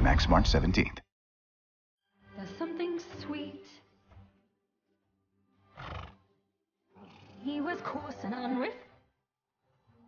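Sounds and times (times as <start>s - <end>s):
horse neighing: 5.6s - 6.3s.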